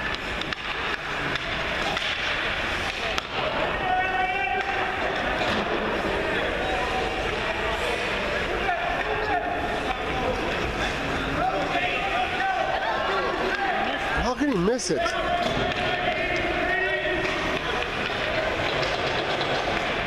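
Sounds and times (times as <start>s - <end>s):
arena ambience: 0.0s - 20.0s
spectators talking and calling out: 0.0s - 20.0s.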